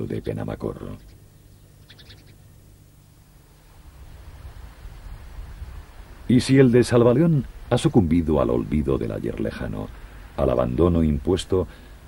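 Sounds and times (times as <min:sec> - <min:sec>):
small birds chirping: 0:00.0 - 0:02.8
low steady hum: 0:00.0 - 0:12.0.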